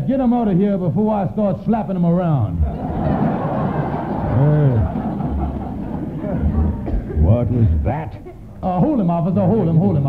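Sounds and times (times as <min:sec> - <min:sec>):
studio audience laughing: 0:02.6 - 0:08.6
man laughing: 0:03.9 - 0:08.4.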